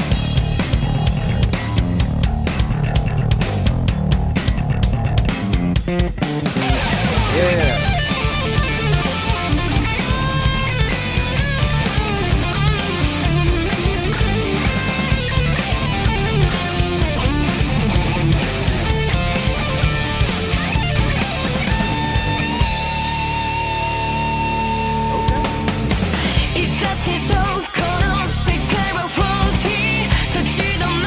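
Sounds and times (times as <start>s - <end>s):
hard rock band playing: 0.0s - 31.0s
long held guitar notes: 5.9s - 26.8s.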